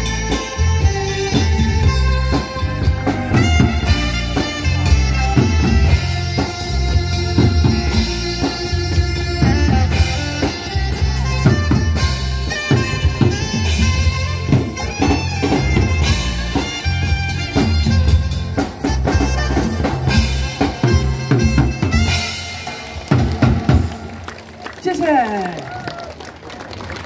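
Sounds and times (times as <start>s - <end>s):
bass line: 0.0s - 24.2s
drum kit beat: 0.0s - 24.2s
trumpet melody: 0.0s - 24.2s.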